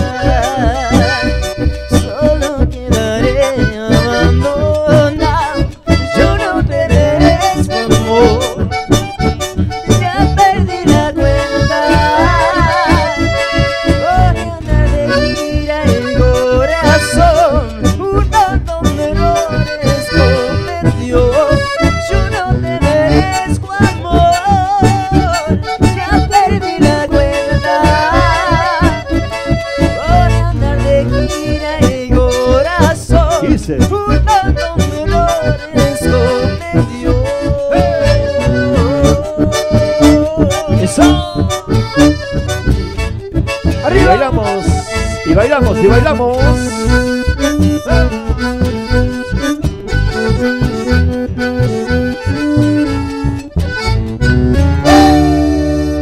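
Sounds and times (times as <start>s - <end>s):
accordion-led dance music: 0.0s - 56.0s
steady bass beat: 0.0s - 56.0s.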